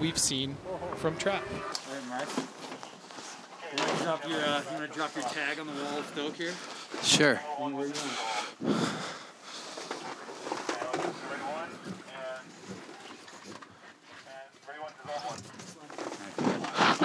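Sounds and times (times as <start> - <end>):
people talking indistinctly: 0.0 - 17.0.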